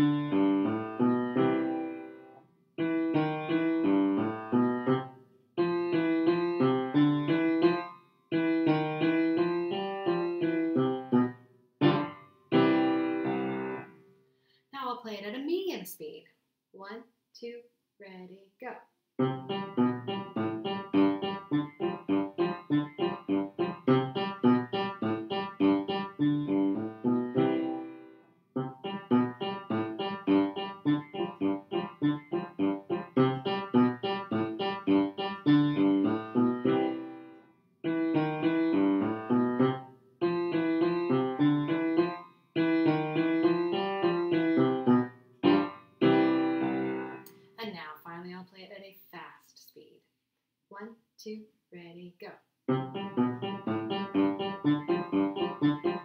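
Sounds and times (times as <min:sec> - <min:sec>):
piano playing: 0:00.0 - 0:14.0, 0:19.2 - 0:47.3, 0:52.7 - 0:56.0.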